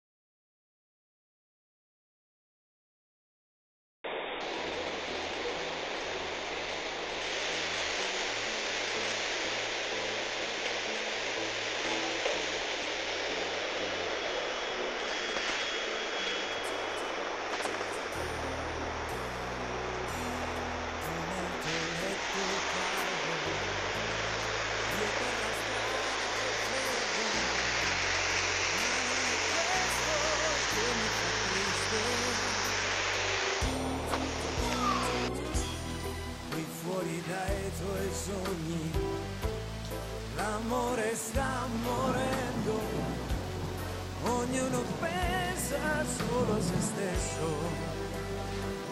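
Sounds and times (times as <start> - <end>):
heavy rain: 4.0 - 48.9
floodwater running: 4.4 - 48.9
bass of background music: 16.6 - 48.9.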